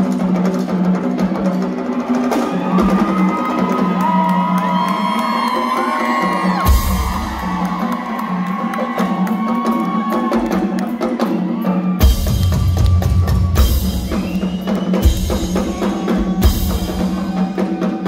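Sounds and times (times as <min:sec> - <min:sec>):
drum solo: 0:00.0 - 0:18.0
crowd whooping and yelling: 0:01.8 - 0:18.0.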